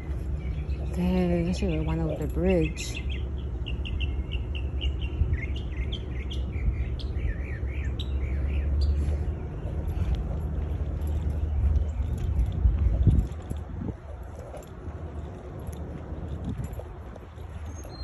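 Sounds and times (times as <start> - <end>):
small songbirds chirping: 0.0 - 18.0
steady low rumble: 0.0 - 18.0.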